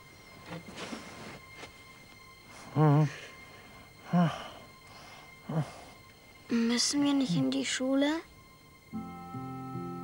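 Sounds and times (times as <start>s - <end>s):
man breathing asleep: 2.4s - 6.8s.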